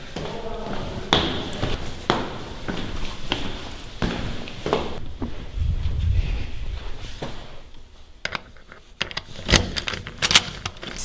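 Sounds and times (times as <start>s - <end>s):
door lock and handle clacking: 8.3s - 11.0s.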